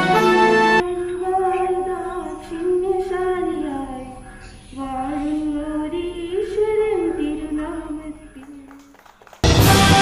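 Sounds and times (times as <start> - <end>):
woman singing unaccompanied: 0.8 - 9.0.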